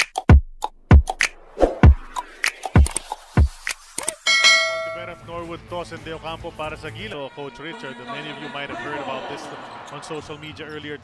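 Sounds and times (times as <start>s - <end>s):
beat with deep kicks: 0.2s - 2.2s
bell chime ringing: 4.3s - 5.3s.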